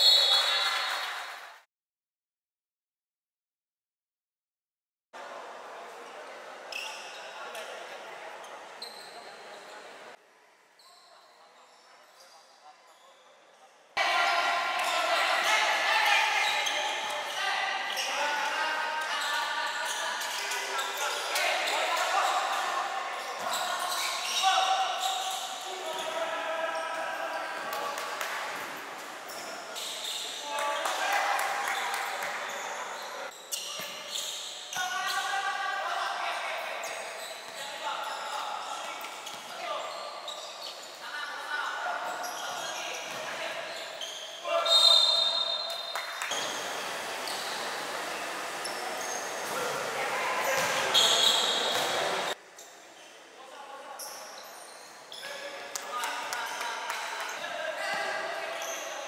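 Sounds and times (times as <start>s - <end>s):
basketball bouncing on court: 50.6s - 51.0s.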